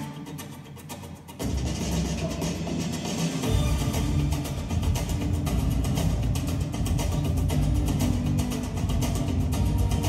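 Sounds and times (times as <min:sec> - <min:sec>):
music with quick drum beat: 0:01.4 - 0:10.0
strong bass line: 0:03.4 - 0:10.0.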